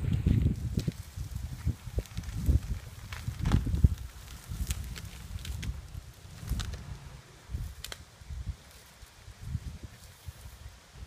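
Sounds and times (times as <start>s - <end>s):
low rumbling: 0.0s - 10.5s
footsteps through long grass: 0.0s - 11.0s.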